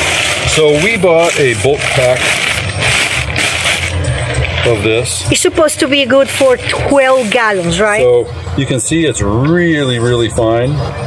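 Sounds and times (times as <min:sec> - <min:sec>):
plastic bag crinkling: 0:00.0 - 0:04.8.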